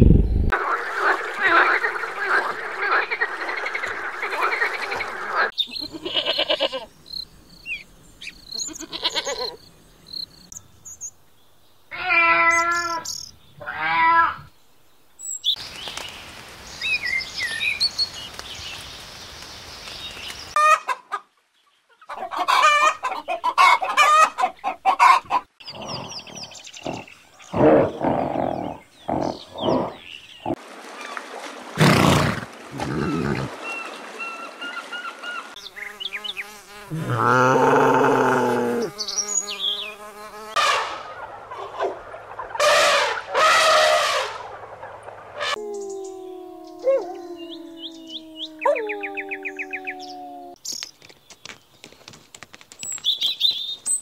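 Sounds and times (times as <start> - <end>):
bird calls: 21.8 - 31.2, 44.8 - 52.1
animal calls: 45.4 - 50.6.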